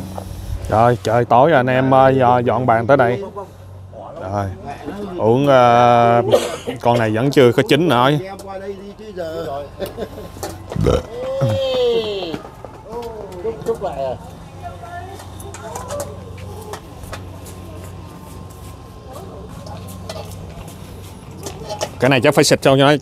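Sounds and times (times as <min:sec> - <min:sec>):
men laughing loudly: 0:06.2 - 0:06.8, 0:09.7 - 0:12.3.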